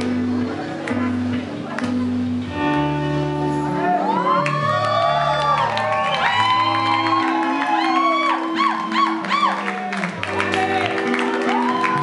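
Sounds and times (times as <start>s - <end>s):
live rock band: 0.0s - 12.0s
crowd cheering and whooping: 3.8s - 12.0s.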